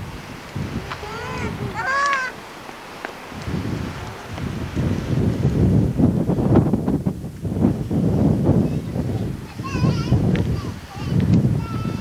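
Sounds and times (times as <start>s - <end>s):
wind buffeting microphone: 0.0s - 12.0s
gull calling: 0.9s - 2.5s.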